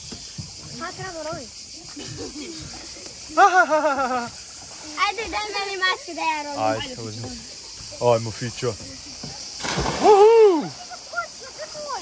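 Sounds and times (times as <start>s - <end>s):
splash into the sea: 9.5s - 12.0s
long shout: 10.0s - 10.8s.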